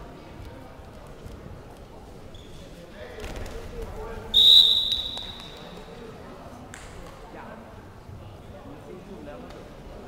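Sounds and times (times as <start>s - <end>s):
shrill whistle blast: 4.4s - 5.7s.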